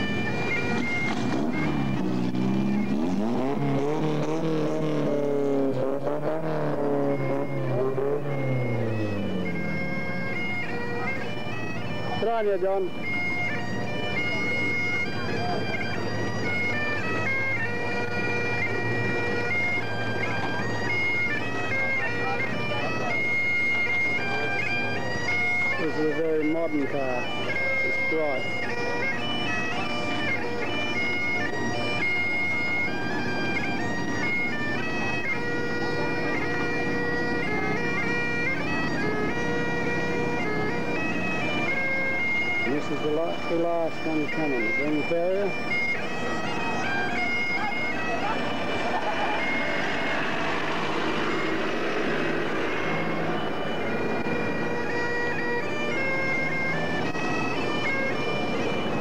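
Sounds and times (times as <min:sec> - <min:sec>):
bagpipes playing: 0:00.0 - 0:59.0.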